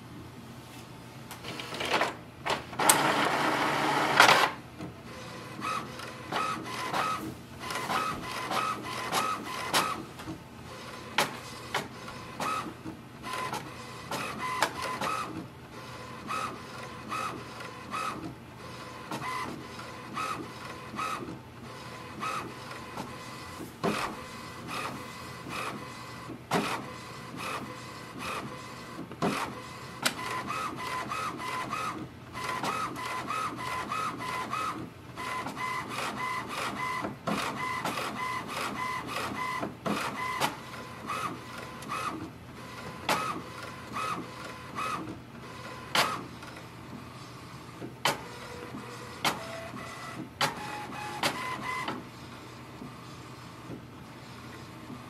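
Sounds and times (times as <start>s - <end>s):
printer paper feed clicks: 1.3s - 5.0s, 5.6s - 47.1s, 47.7s - 52.1s
printer carriage whirring: 1.3s - 55.0s.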